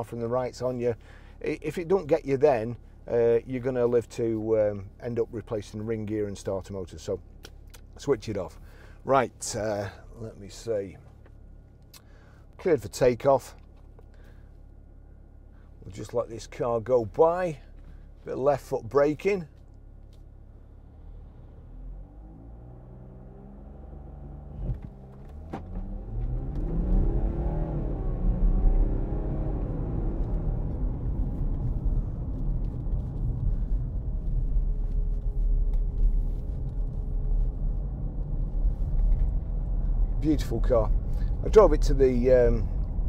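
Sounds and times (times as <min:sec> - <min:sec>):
low road rumble: 0:00.0 - 0:43.0
car engine accelerating: 0:20.1 - 0:43.0.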